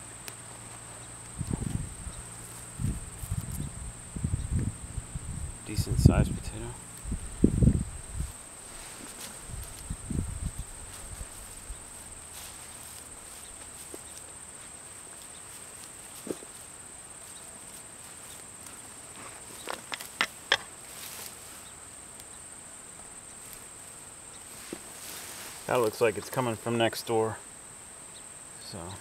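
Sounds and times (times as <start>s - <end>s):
sharp crackles: 6.5s - 22.4s
hands digging through soil: 8.2s - 21.7s.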